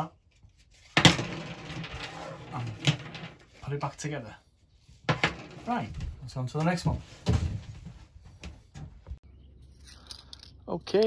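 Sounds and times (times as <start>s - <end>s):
plastic parts rustling and scraping: 0.3s - 3.9s.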